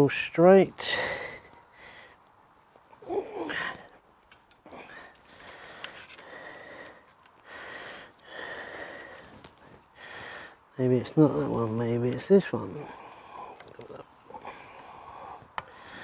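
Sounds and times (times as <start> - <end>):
man breathing heavily: 0.8 - 11.3, 12.6 - 16.0.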